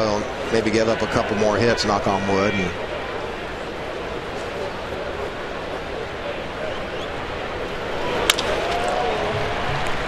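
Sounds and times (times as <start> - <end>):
wooden bat hitting ball: 8.2 - 8.9.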